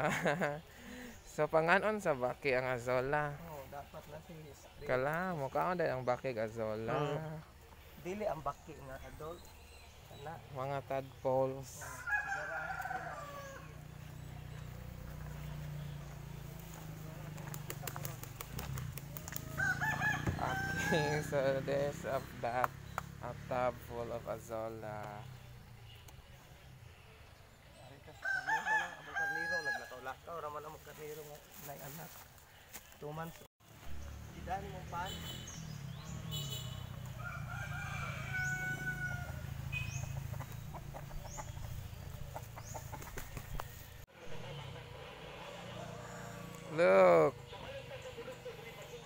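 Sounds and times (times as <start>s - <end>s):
rooster crowing: 11.8s - 14.0s, 19.4s - 21.4s, 28.1s - 30.0s, 37.1s - 39.8s, 43.6s - 46.9s.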